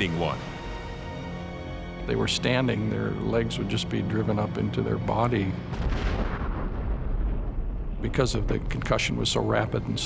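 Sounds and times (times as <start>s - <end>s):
deep rumble: 2.1s - 10.0s
explosion blast on water: 5.7s - 7.9s.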